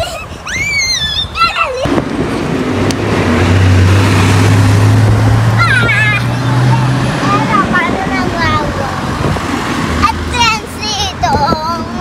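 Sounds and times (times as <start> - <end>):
road train engine: 0.0 - 12.0.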